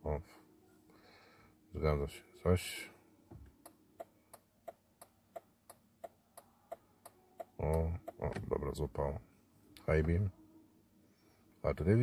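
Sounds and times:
turn signal ticking: 0:03.6 - 0:08.4.

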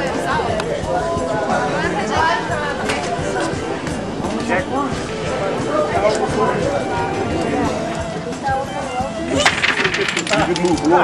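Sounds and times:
wooden blocks tower collapsing: 0:09.4 - 0:11.0.

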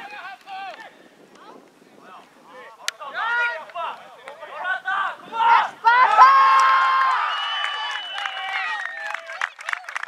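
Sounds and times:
people shouting and cheering: 0:02.6 - 0:10.0.

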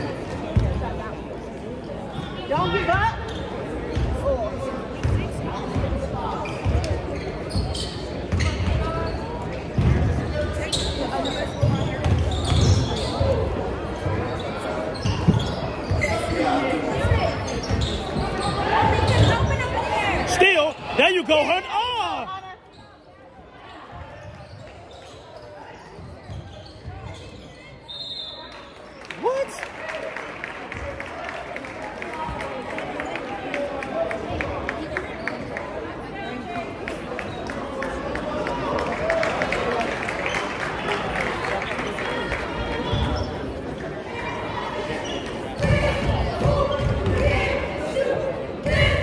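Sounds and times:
voices echoing in hall: 0:00.0 - 0:49.0
shoe squeaks: 0:06.4 - 0:09.3, 0:10.6 - 0:13.4, 0:14.2 - 0:16.4, 0:17.3 - 0:19.6, 0:24.2 - 0:28.5, 0:44.9 - 0:45.4.

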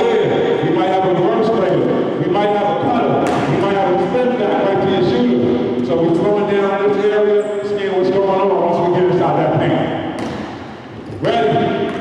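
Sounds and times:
person talking: 0:00.0 - 0:09.9.

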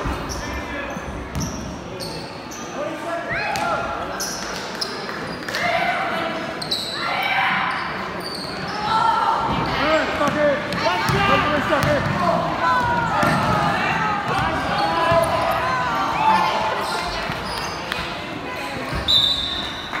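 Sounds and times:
sneakers squeaking: 0:00.0 - 0:02.8, 0:03.5 - 0:05.6, 0:06.4 - 0:12.2, 0:14.2 - 0:20.0.

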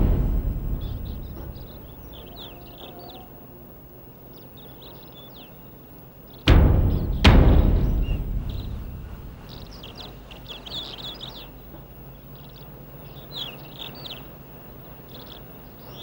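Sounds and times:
deep drum stroke: 0:00.0 - 0:02.9, 0:06.5 - 0:10.2
low steady hum: 0:00.0 - 0:03.6, 0:06.5 - 0:10.3
small birds chirping: 0:00.0 - 0:16.0.

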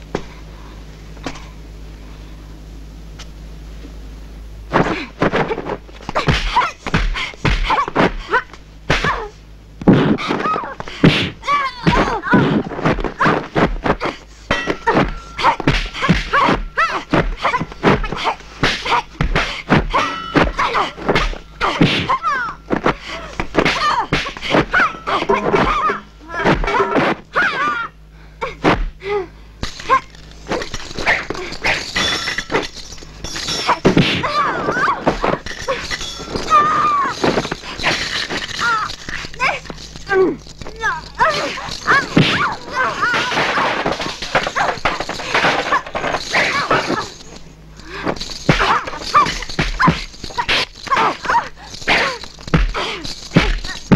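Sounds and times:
punch and kick impacts: 0:04.8 - 0:08.2, 0:08.9 - 0:27.2, 0:51.9 - 0:53.9
women yelling and grunting: 0:10.2 - 0:28.6, 0:33.6 - 0:37.3, 0:38.6 - 0:47.2, 0:47.9 - 0:53.9
fighters shouting yells: 0:40.8 - 0:43.7.

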